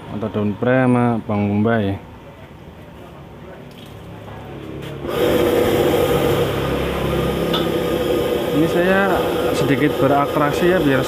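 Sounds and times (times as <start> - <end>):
gas burner roaring: 4.2 - 11.0.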